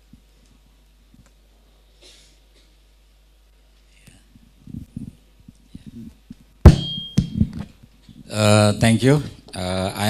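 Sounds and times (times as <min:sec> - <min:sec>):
microphone handling thump: 0:05.8 - 0:07.7.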